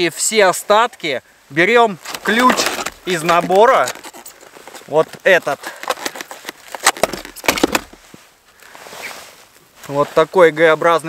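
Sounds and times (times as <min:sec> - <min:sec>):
handling clicks and crackles: 0:02.0 - 0:08.0
soft hiss: 0:07.9 - 0:11.0.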